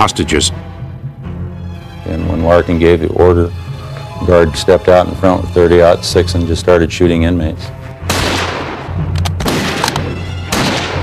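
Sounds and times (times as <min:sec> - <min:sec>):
rifle shots echoing: 0:08.0 - 0:11.0.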